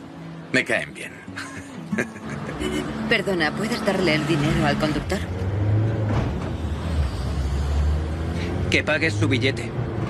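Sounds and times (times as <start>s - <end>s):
bus engine rumbling: 1.4s - 10.0s.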